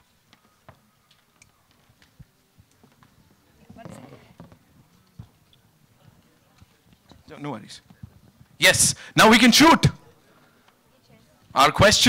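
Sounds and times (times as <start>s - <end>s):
microphones being handled: 0.0s - 8.6s.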